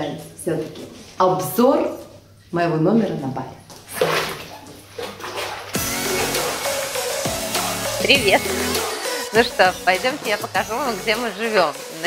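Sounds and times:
faint background music: 0:00.0 - 0:12.0
water splashing in a bathtub: 0:03.0 - 0:09.0
music with deep falling bass hit: 0:05.8 - 0:08.8.

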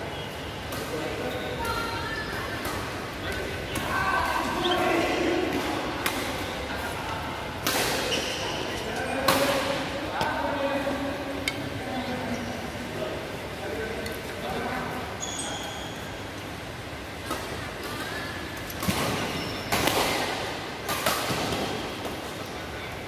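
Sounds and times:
people talking: 0:00.0 - 0:15.9.

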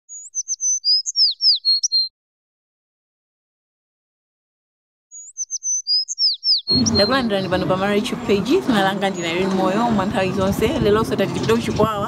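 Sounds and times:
bird chirping: 0:00.1 - 0:02.1, 0:05.1 - 0:12.0.

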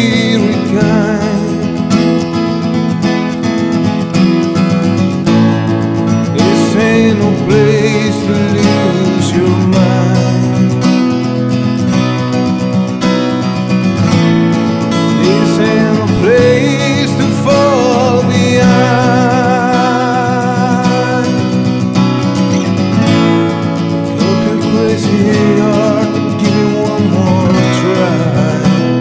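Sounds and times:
bending lead guitar line: 0:00.0 - 0:29.0
guitars strumming chords: 0:00.0 - 0:29.0.

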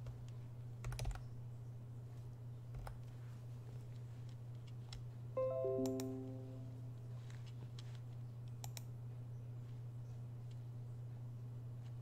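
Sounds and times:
electronic descending chime: 0:05.4 - 0:06.8.

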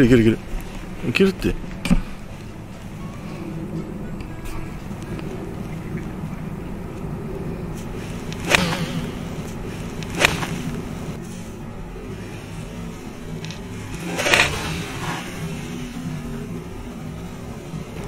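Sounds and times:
soft background music: 0:00.0 - 0:18.0
golf club swishing through air: 0:07.8 - 0:11.6.

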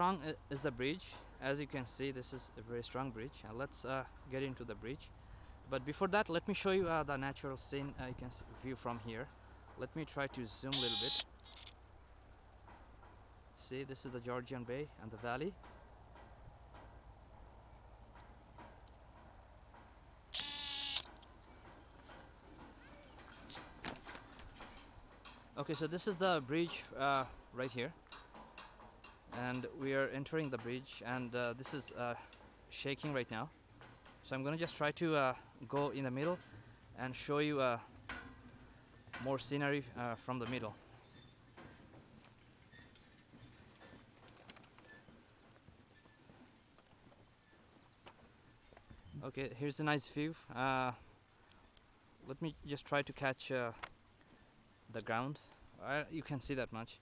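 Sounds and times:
loud steady buzzing tone: 0:10.7 - 0:11.3, 0:20.3 - 0:21.1
light scattered ticks: 0:22.0 - 0:37.0
faint clicks and knocks: 0:41.5 - 0:46.1.

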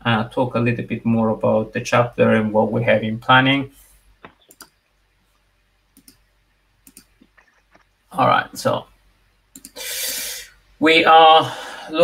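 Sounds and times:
computer mouse clicking: 0:04.2 - 0:04.8, 0:06.0 - 0:06.2, 0:06.8 - 0:07.9, 0:09.5 - 0:09.8.

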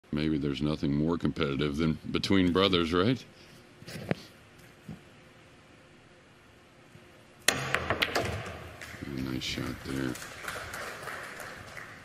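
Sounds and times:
pool balls clicking: 0:07.4 - 0:10.4
cue striking ball: 0:07.5 - 0:09.0.

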